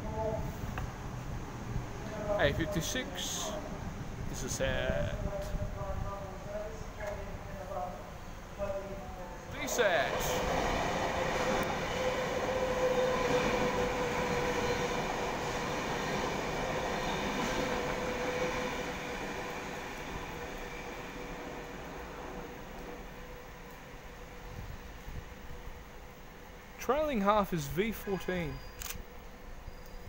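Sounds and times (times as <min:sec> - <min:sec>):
electric train whine: 0:00.0 - 0:30.0
train wheels on rails: 0:09.6 - 0:30.0.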